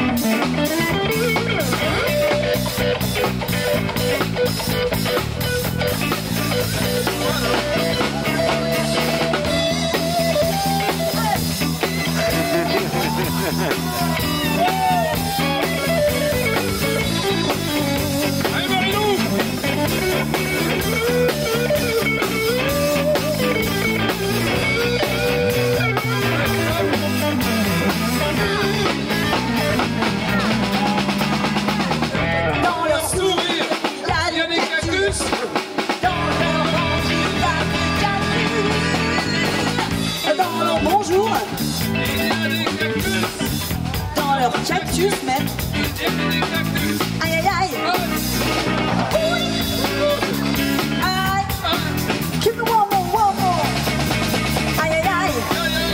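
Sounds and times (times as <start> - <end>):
live band playing: 0.0 - 55.9.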